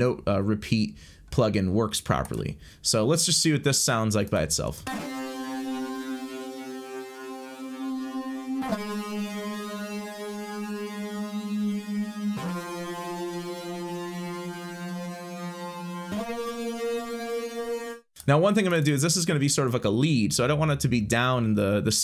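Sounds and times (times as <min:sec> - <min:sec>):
low synth lead held notes: 0:04.9 - 0:18.0.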